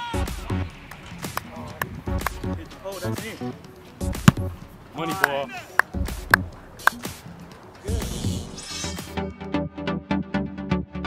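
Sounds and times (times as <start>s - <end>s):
music with a beat: 0.2s - 2.6s
boot kicking a football: 4.2s - 4.6s.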